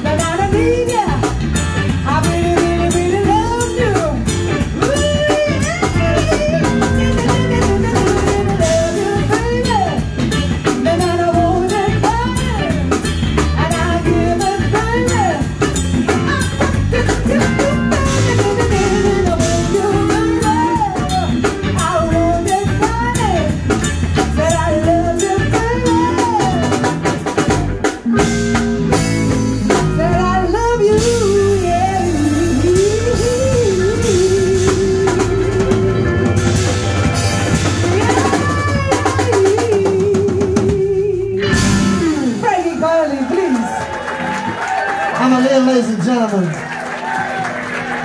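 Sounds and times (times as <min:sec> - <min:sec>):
woman singing: 0:00.0 - 0:27.4, 0:29.7 - 0:36.1, 0:37.8 - 0:43.6
electric guitar: 0:00.0 - 0:45.2
bass guitar: 0:00.0 - 0:48.0
drum kit: 0:00.0 - 0:48.0.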